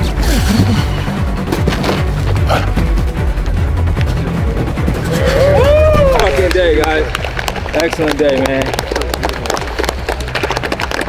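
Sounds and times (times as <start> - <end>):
people clapping: 5.5 - 11.0.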